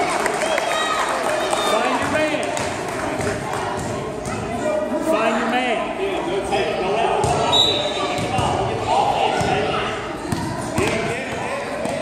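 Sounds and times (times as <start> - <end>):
voices echoing in a gym: 0.0 - 12.0.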